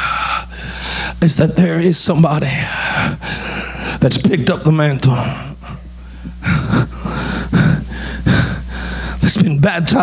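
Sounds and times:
man breathing heavily into microphone: 0.0s - 1.2s, 2.6s - 4.0s, 5.2s - 9.2s
man preaching: 1.2s - 3.2s, 4.0s - 5.9s, 9.2s - 10.0s.

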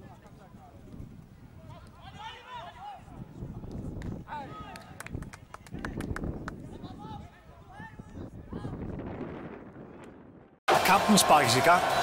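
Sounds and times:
players shouting and calling: 1.6s - 3.4s, 10.7s - 12.0s.

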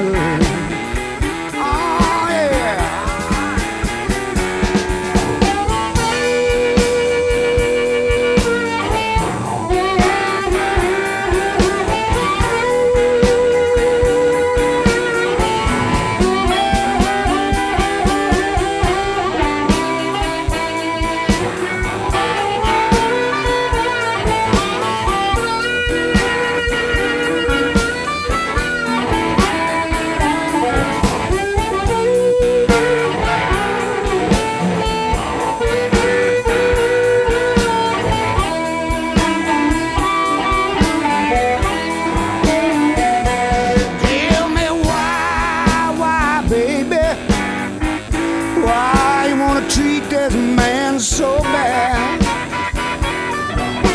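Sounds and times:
bass: 0.0s - 53.9s
drum kit: 0.0s - 53.9s
electric guitar lead: 0.0s - 53.9s.

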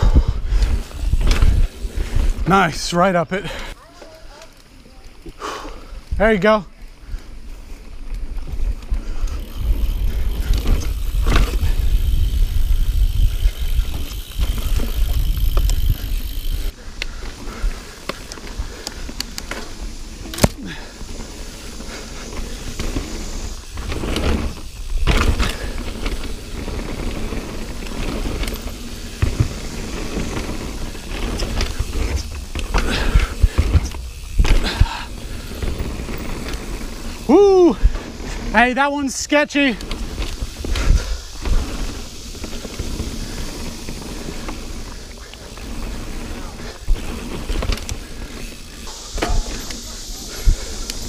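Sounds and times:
wind on microphone: 0.0s - 2.5s
bike knocking and rattling: 0.0s - 6.6s, 7.4s - 51.0s
bike tyres rumbling on dirt: 0.0s - 51.0s.

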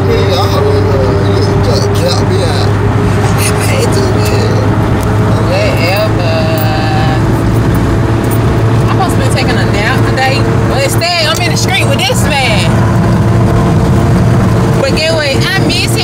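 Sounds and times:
voices: 0.0s - 12.8s, 14.7s - 16.0s
car engine and road drone: 0.0s - 16.0s.

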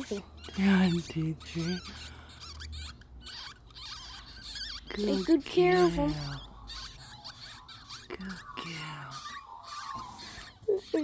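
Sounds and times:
ferret kits squeaking: 0.0s - 11.0s.

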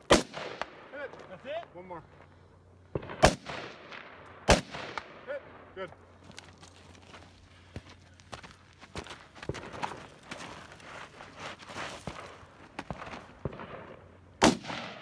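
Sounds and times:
rifle shots with echo: 0.0s - 1.1s, 2.9s - 5.7s, 13.4s - 15.0s.

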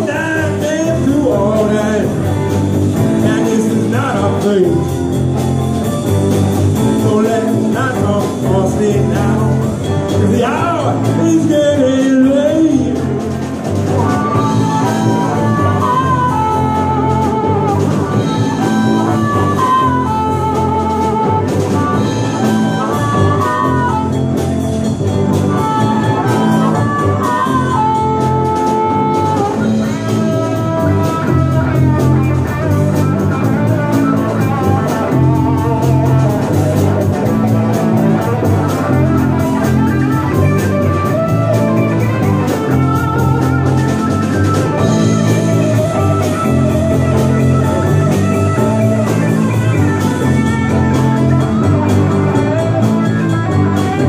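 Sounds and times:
blues-rock band playing: 0.0s - 54.0s
lead guitar bending notes: 0.0s - 54.0s.

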